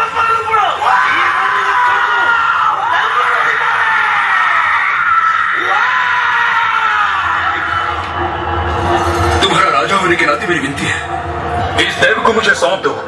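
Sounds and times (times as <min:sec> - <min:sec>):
high-pitched wailing scream: 0:00.8 - 0:09.3
music: 0:06.3 - 0:13.0.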